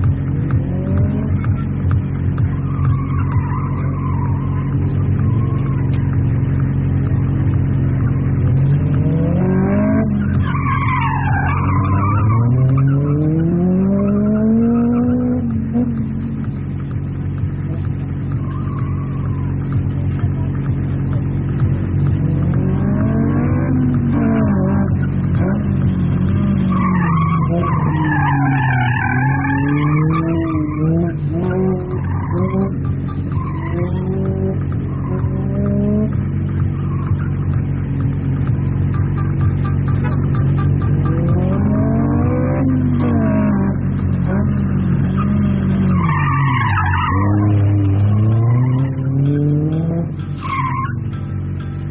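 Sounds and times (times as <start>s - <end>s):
car engine revving: 0.0s - 51.9s
tyres squealing: 9.9s - 15.2s, 23.2s - 37.5s, 39.0s - 51.9s.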